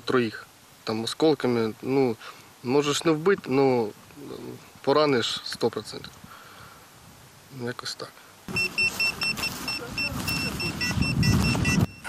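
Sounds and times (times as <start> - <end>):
high-pitched electronic beeps: 8.5 - 12.0.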